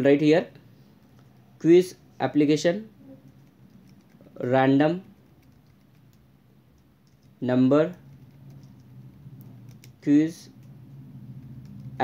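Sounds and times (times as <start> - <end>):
steady low hum: 0.0 - 12.0
keyboard keystrokes: 5.2 - 10.8, 11.4 - 12.0.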